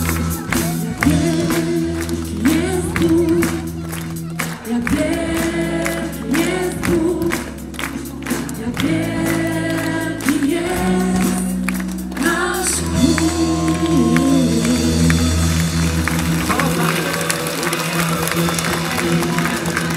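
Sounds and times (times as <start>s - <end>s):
band playing worship song: 0.0s - 19.9s
crowd clapping along: 0.0s - 19.9s
group singing: 0.5s - 7.6s, 8.2s - 15.8s.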